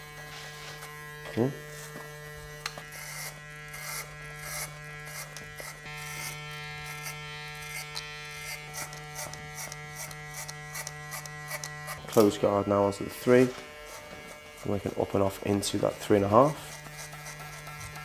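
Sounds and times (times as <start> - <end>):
clipper blade rasping through hair: 0.0 - 18.0
hair clipper buzzing: 0.0 - 18.0.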